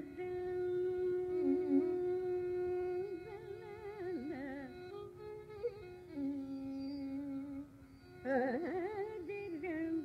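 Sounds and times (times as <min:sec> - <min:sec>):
woman singing a long note: 0:00.0 - 0:03.2.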